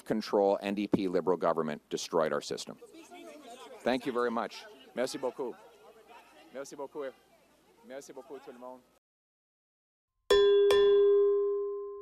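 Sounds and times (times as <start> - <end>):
notification bell dings: 10.3 - 12.0.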